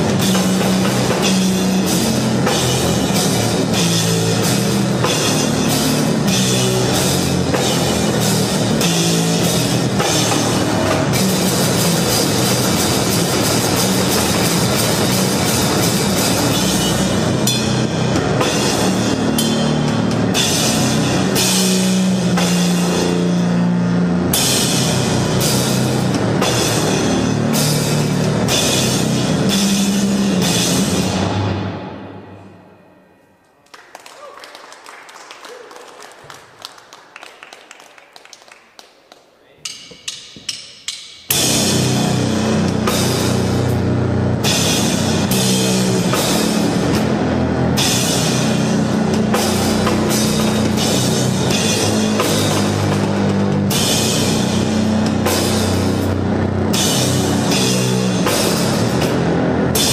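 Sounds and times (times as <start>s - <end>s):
heavy band playing loud: 0.0s - 32.7s, 39.6s - 59.9s.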